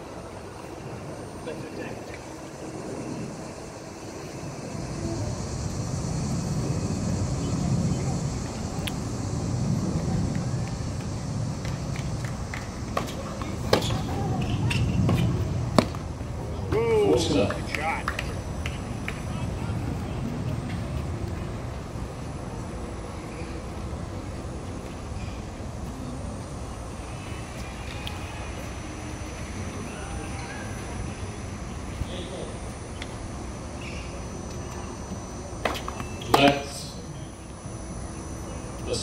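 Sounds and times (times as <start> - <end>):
background chatter: 0.0 - 39.0
low outdoor rumble: 0.0 - 39.0.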